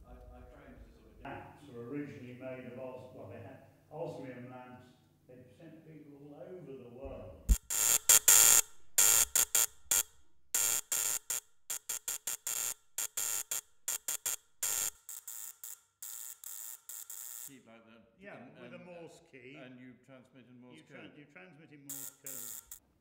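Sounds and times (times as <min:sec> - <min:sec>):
spark gap buzzing morse code: 0:07.5 - 0:17.5, 0:21.9 - 0:22.8.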